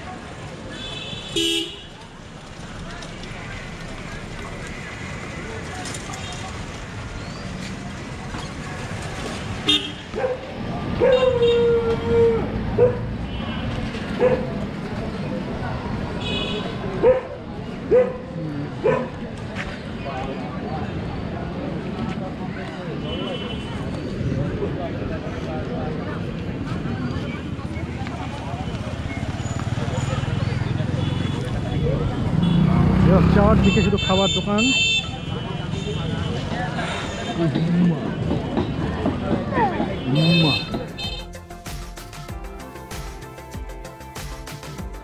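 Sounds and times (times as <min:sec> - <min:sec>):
people chattering: 0:00.0 - 0:41.3
street traffic noise: 0:00.0 - 0:45.0
vehicle horn: 0:00.8 - 0:01.9, 0:09.6 - 0:10.1, 0:16.2 - 0:16.8, 0:33.5 - 0:36.4, 0:40.0 - 0:41.3.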